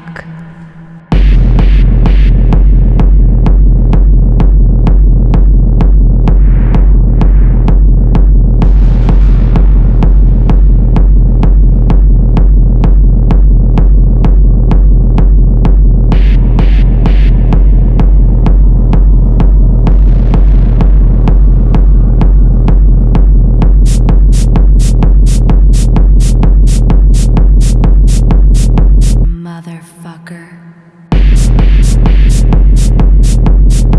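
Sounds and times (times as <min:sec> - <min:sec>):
deep bass: 0:01.1 - 0:29.4, 0:31.1 - 0:33.9
techno kick drum beat: 0:01.1 - 0:29.4, 0:31.1 - 0:33.9
ticking hi-hats: 0:23.6 - 0:29.2, 0:31.1 - 0:33.9
high-pitched synth stabs: 0:23.8 - 0:29.3, 0:31.1 - 0:33.9.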